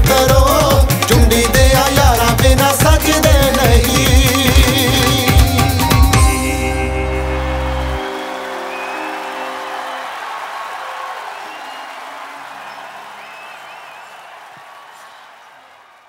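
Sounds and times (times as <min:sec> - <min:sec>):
crowd cheering and applauding: 0:02.6 - 0:16.0
band chord ringing out: 0:04.8 - 0:10.1
low bass note: 0:05.5 - 0:08.0.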